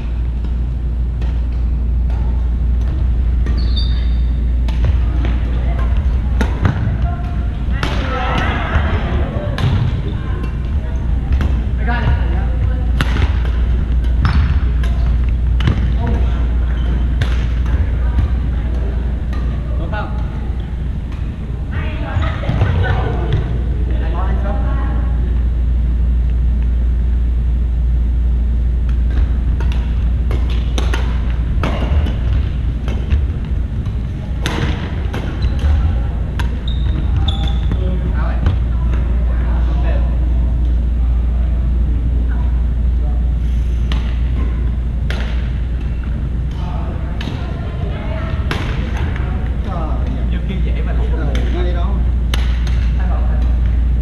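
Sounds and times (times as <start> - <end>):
steady low hum: 0.0 - 54.0
players' voices: 0.8 - 54.0
rackets hitting shuttlecocks: 12.9 - 19.6, 28.8 - 36.6, 52.3 - 53.8.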